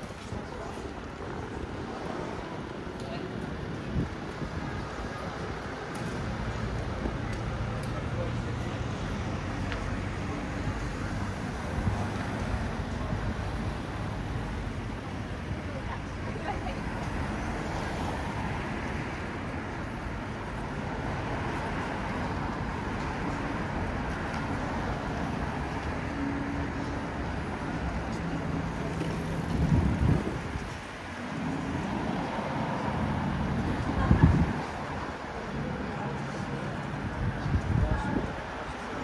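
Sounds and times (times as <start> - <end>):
city street traffic hum: 0.0 - 39.0.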